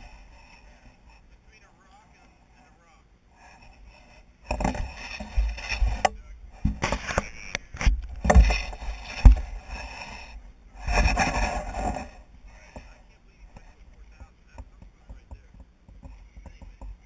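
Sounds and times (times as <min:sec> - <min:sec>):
tyres scraping on stone: 0:03.4 - 0:13.0.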